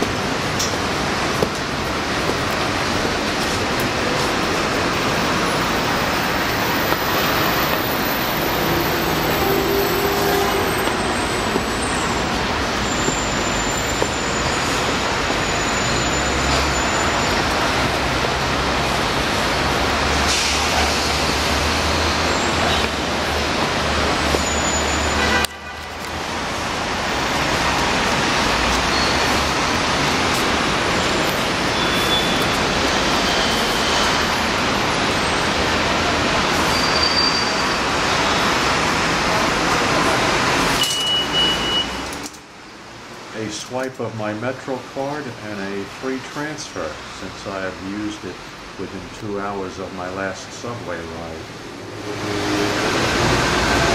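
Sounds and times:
roar of passing vehicles: 0.0s - 13.4s, 51.5s - 53.9s.

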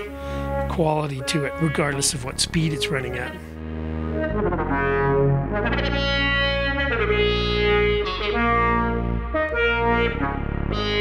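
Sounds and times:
sustained synth bass: 0.0s - 11.0s
synth melody notes: 0.0s - 11.0s.

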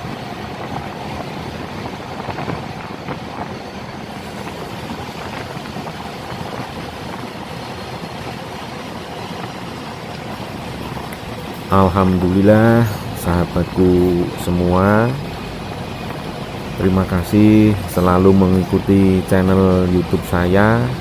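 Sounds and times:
boat engine running: 0.0s - 21.0s
water rushing along hull: 0.0s - 21.0s.

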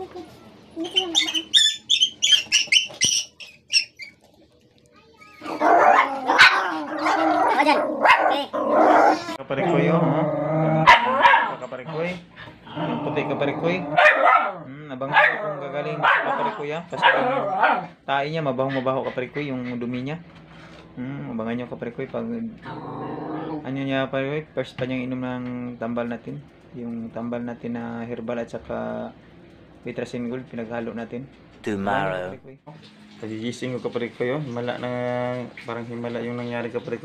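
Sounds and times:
dogs barking and growling: 5.3s - 20.2s, 22.6s - 23.8s.

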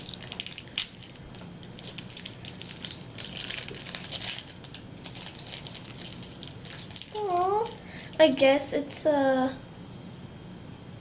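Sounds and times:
plastic wrapper crinkling: 0.0s - 8.5s.

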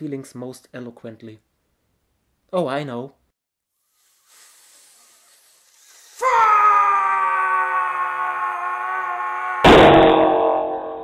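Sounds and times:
faint hiss: 3.8s - 6.3s
person yelling in rage: 6.2s - 9.7s
loud crash: 9.6s - 11.0s.

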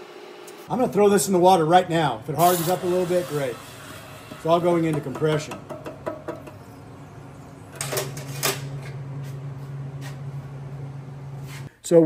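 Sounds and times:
low machine hum: 0.0s - 11.7s.

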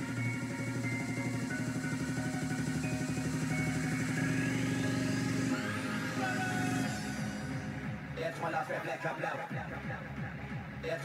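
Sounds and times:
rising pitch sweep: 0.0s - 8.2s
dj mix music: 0.0s - 11.0s.

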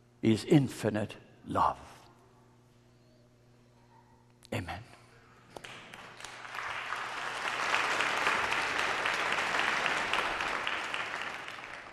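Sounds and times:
congregation applauding: 5.6s - 11.9s.

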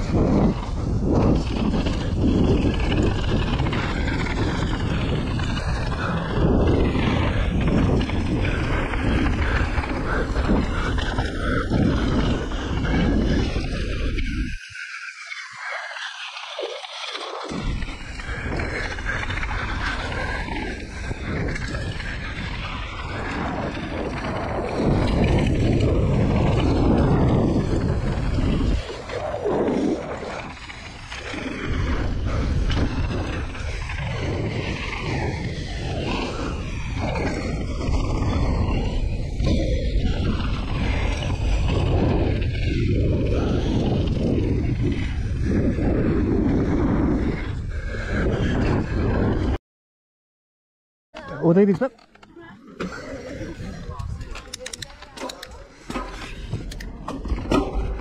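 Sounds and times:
tyres rumbling on dirt: 0.0s - 13.6s
bike rattling: 0.0s - 47.8s, 51.2s - 58.0s
wind rush over microphone: 0.0s - 49.6s, 51.4s - 58.0s.

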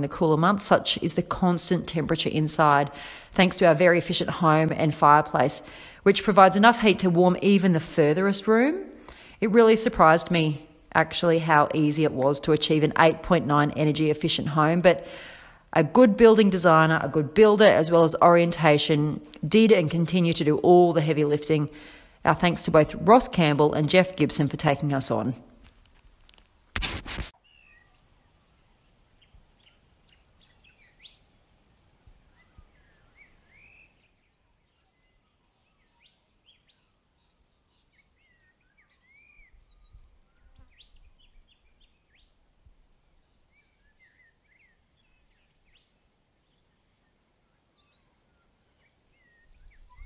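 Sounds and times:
birds chirping and whistling: 27.4s - 31.2s, 32.3s - 42.4s, 47.6s - 50.0s.

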